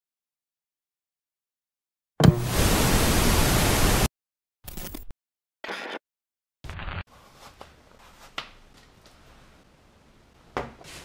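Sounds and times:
static hiss: 2.3 - 4.1.

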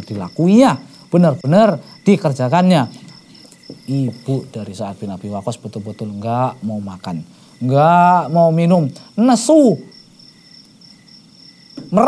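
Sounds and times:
man speaking: 0.0 - 3.0, 3.9 - 9.9
high-pitched insect chirring: 0.0 - 12.0.

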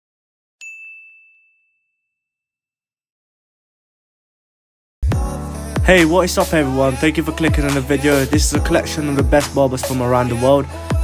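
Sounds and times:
bright bell-like ding: 0.6 - 2.3.

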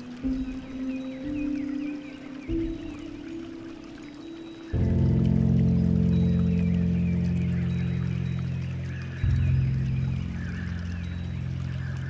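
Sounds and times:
faint bird chirps: 0.0 - 12.0
running water: 0.0 - 12.0
slow piano music: 0.0 - 12.0.

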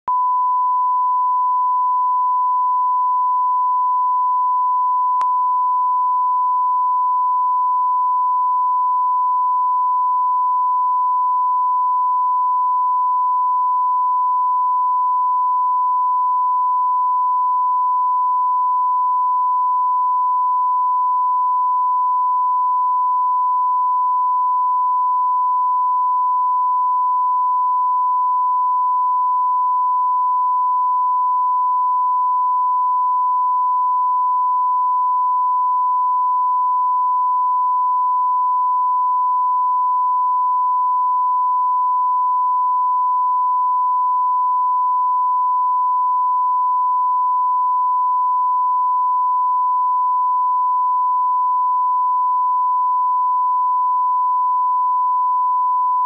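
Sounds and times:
reference tone: 0.0 - 56.0.

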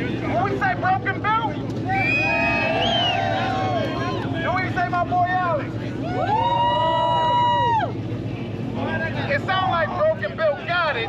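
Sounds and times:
cars idling: 0.0 - 11.0
loud voices: 0.0 - 11.0
people shouting: 1.9 - 4.4.

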